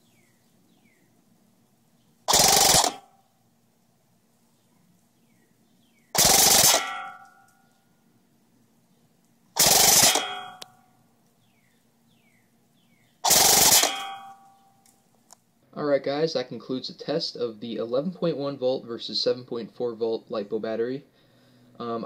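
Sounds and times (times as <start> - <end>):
airsoft rifle full-auto bursts: 2.3 - 3.1, 6.1 - 7.0, 9.6 - 10.6, 13.2 - 14.3.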